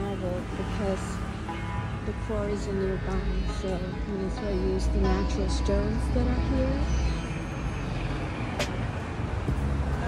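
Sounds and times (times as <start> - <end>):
passing cars rumble: 0.0 - 10.0.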